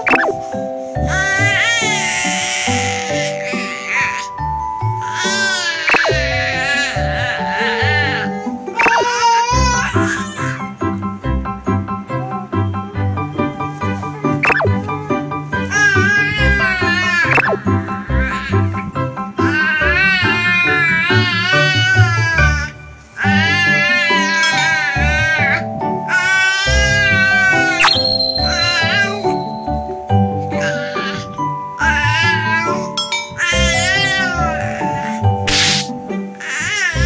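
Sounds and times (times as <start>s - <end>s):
background music with regular beat: 0.0s - 37.0s
baby squealing: 1.1s - 10.8s, 12.2s - 18.8s, 19.4s - 37.0s
baby vocalizing: 5.0s - 10.7s, 13.6s - 18.5s.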